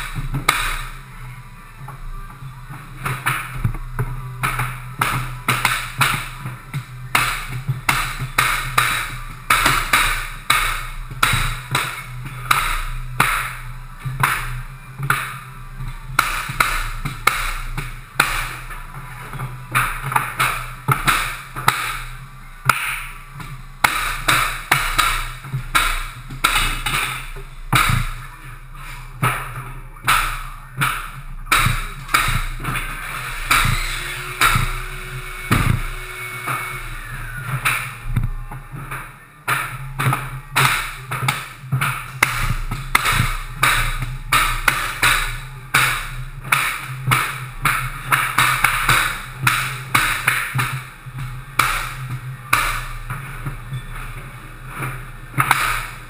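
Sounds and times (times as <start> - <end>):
mallet striking flooring nailer: 4.4 - 15.3, 16.1 - 18.8, 19.7 - 28.3, 29.2 - 38.0, 39.5 - 53.1, 55.4 - 56.0.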